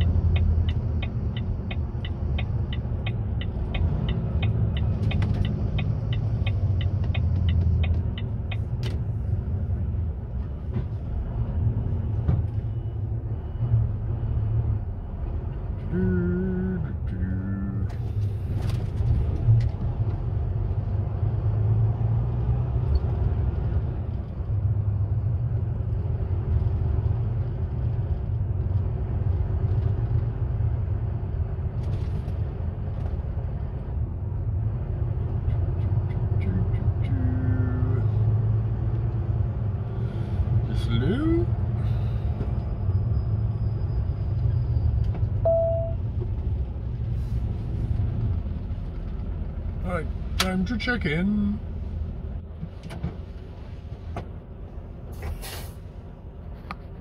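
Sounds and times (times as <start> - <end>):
turn indicator ticking: 0.0 - 9.0
diesel engine rumble: 0.0 - 57.0
short hiss: 55.2 - 55.8.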